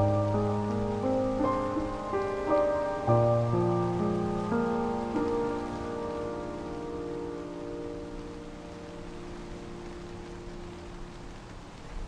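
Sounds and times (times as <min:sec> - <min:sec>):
rain hiss: 0:00.0 - 0:12.0
soft piano chords: 0:00.0 - 0:12.0.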